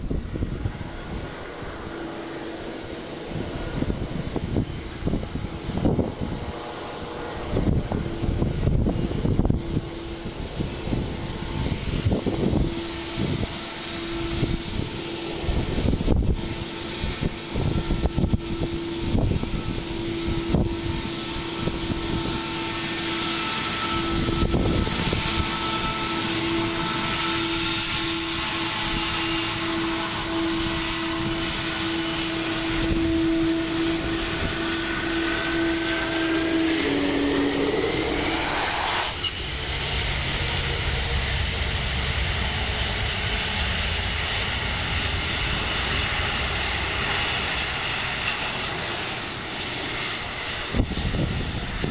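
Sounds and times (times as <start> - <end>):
jet engines whining: 0.0 - 51.9
wind buffeting microphone: 0.0 - 51.9.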